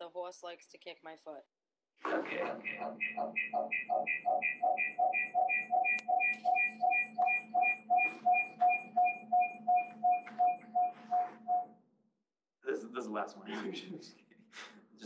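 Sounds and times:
glitching stuttering audio playback: 2.1s - 11.7s.

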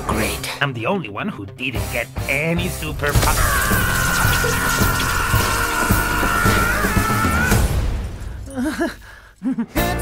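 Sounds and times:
trailer music with heavy rock beat: 1.8s - 8.4s.

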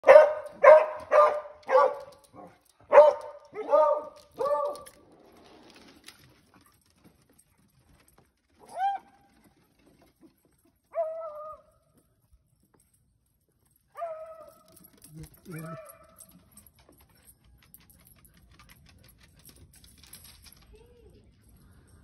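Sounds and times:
dogs barking: 0.0s - 4.9s, 15.5s - 16.3s
dog yelping: 15.4s - 16.1s.

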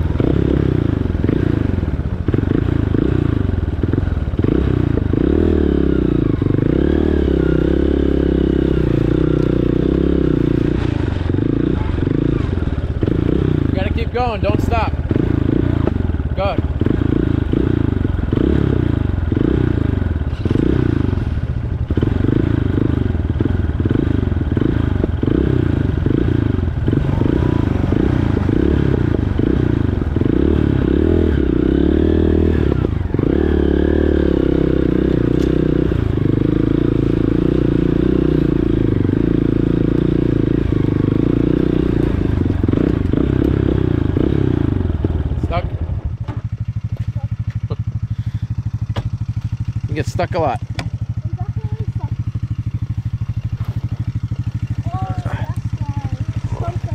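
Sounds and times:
dirt bike engine: 0.0s - 56.9s.

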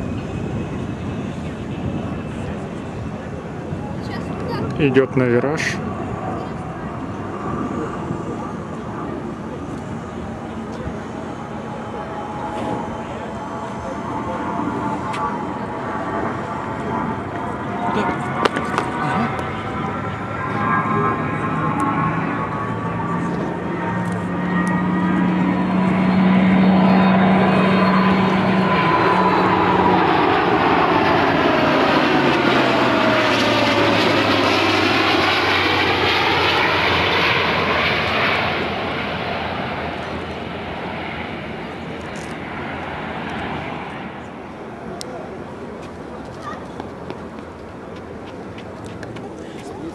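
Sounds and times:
jet aircraft flypast: 0.0s - 49.9s
engine whine dropping in pitch: 7.8s - 43.4s.

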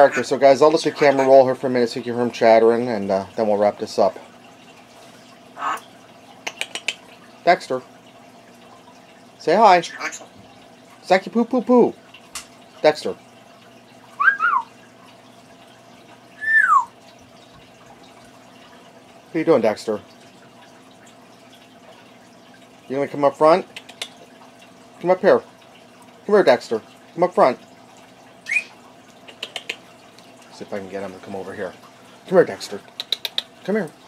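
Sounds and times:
parrot chirping: 0.8s - 1.4s, 14.2s - 14.7s, 16.4s - 16.9s, 28.5s - 29.8s
parrot clicking: 6.4s - 7.0s, 23.7s - 24.2s, 29.3s - 30.3s, 32.9s - 33.6s
parrot whistling: 14.2s - 14.7s, 16.4s - 16.9s, 28.4s - 28.8s.

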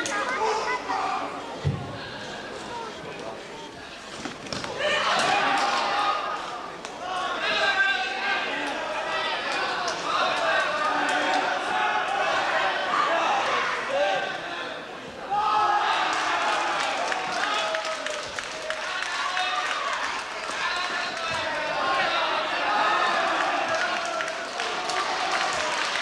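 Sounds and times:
voices shouting and talking: 0.0s - 26.0s.

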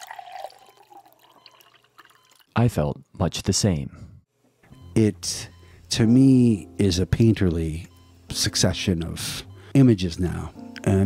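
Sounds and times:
small drips: 0.0s - 2.6s
soft water trickle: 0.0s - 2.6s.

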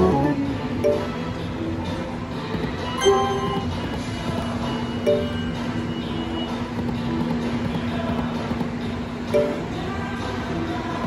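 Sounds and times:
slot machine game music: 0.0s - 1.6s, 2.9s - 3.8s, 5.0s - 5.8s, 9.3s - 9.8s.

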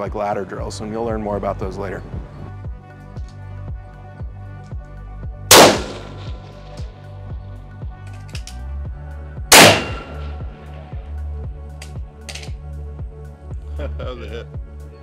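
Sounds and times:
background music with beat: 0.0s - 15.0s
rifle shots: 5.5s - 6.6s, 9.5s - 10.4s.

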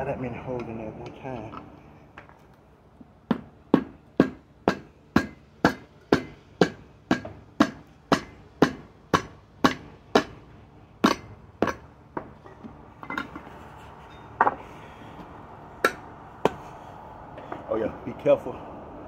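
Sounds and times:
hammer striking metal tool: 3.3s - 10.4s, 11.0s - 12.3s, 15.8s - 16.6s.

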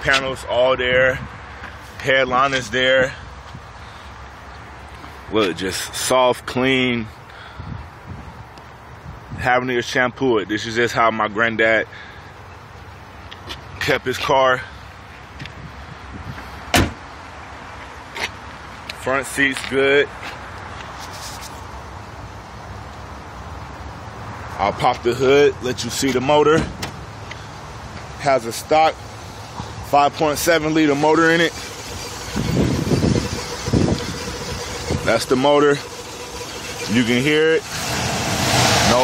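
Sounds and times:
car door shutting thud: 16.7s - 17.0s, 26.6s - 27.0s
car engine idling low: 27.0s - 39.0s
wind buffeting microphone: 32.2s - 35.2s.

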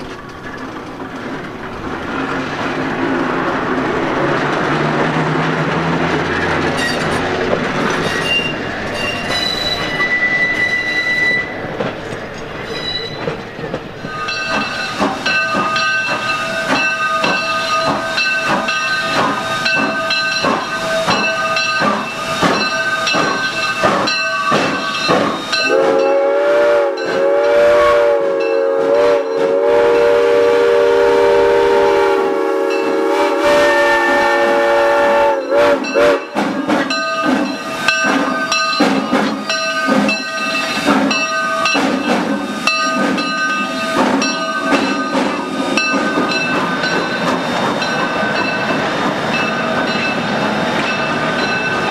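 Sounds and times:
electric trolley running on rails: 0.0s - 51.9s
steam locomotive humming and beating: 0.0s - 51.9s
trolley wheel squeal: 6.6s - 25.7s
steam whistle blast: 25.5s - 36.2s.

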